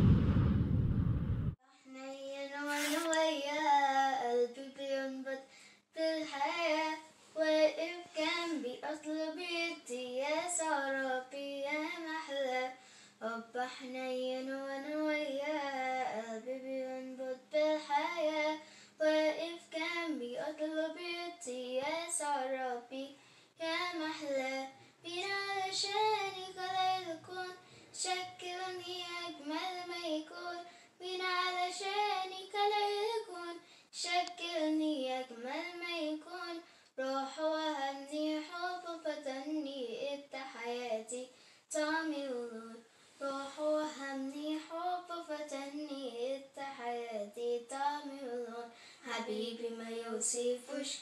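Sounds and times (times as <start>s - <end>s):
child singing a hymn: 1.8s - 5.4s, 6.0s - 51.0s.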